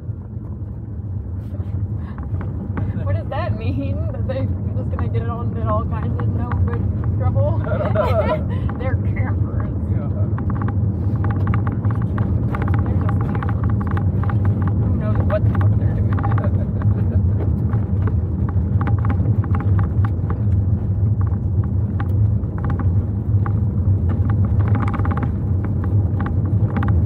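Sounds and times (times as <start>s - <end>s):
car engine and road rumble: 0.0s - 27.0s
light clicks and rattles: 2.0s - 27.0s.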